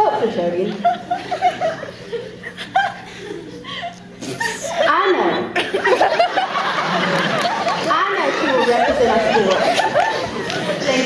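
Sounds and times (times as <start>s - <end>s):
person chuckling and laughing: 0.9s - 4.8s.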